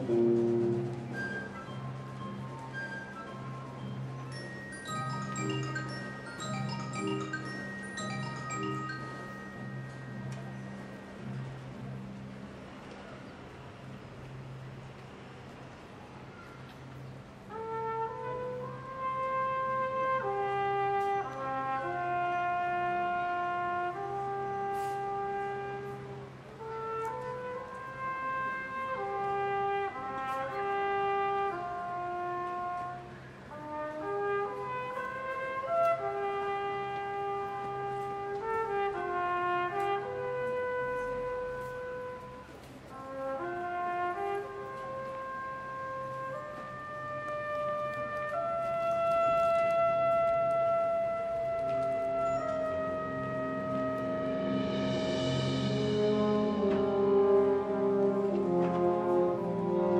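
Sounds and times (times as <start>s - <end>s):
solo horn melody: 0.0s - 11.4s, 17.4s - 59.9s
wind band accompaniment: 0.0s - 59.9s.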